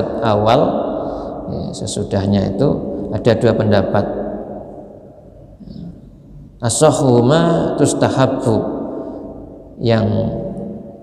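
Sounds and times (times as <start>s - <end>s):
man speaking: 0.0s - 4.5s, 5.6s - 8.8s, 9.8s - 10.6s
steady low hum: 0.0s - 11.0s.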